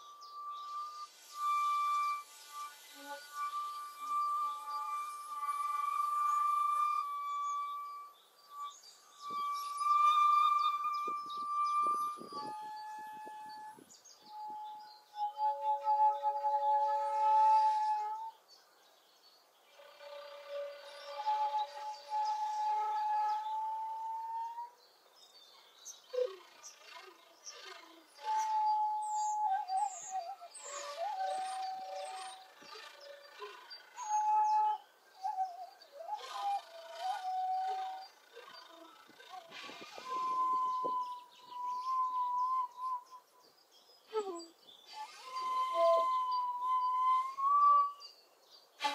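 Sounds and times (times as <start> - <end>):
bamboo flutes playing: 0.0 - 18.7, 19.5 - 48.9
birds chirping: 0.0 - 48.9.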